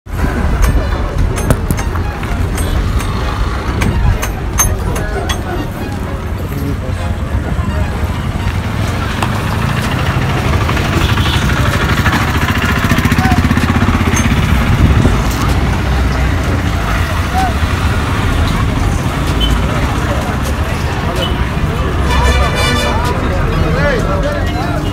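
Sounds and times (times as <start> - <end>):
crowd chatter: 0.1 - 24.9
vehicle engines rumbling: 0.1 - 24.9.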